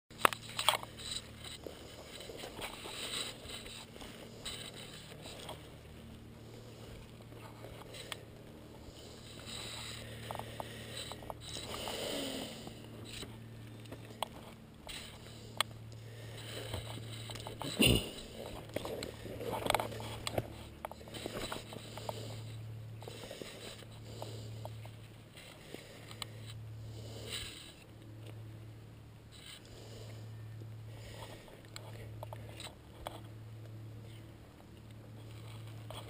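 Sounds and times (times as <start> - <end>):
twigs scraping: 0.1 - 26.6
steady low hum: 0.1 - 36.0
camera handling noise: 0.2 - 5.8, 18.4 - 22.2.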